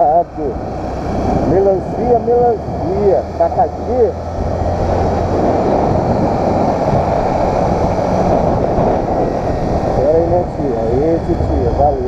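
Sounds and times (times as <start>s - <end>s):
motorcycle engine running: 0.0s - 12.0s
wind rushing over microphone: 0.0s - 12.0s.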